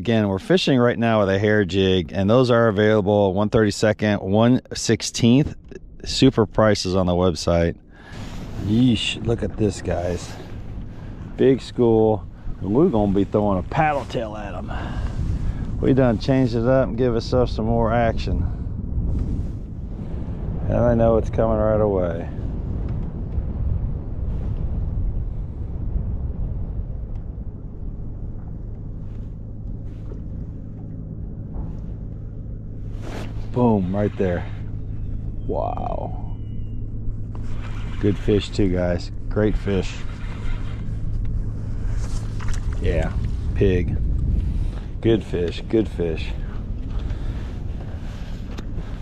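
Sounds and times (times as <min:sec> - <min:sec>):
faint hum: 0:00.0 - 0:49.0
wind on microphone: 0:01.1 - 0:49.0
choppy water: 0:05.5 - 0:49.0.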